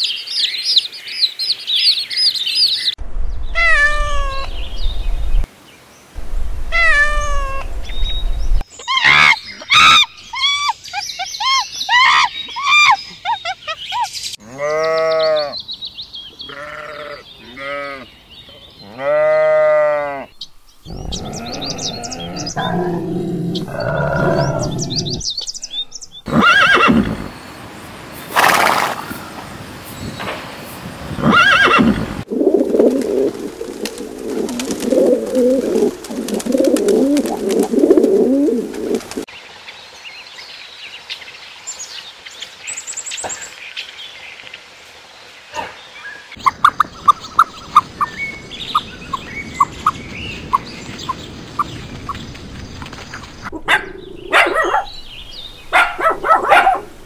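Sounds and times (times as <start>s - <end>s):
drawn-out rising and falling calls: 2.8s - 5.5s, 6.2s - 15.7s, 16.4s - 27.4s, 31.2s - 39.3s, 46.3s - 57.0s.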